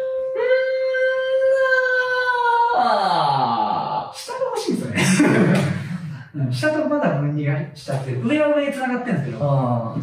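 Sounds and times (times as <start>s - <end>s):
person humming high note: 0.0s - 3.4s
person singing sliding vowel: 0.0s - 4.0s.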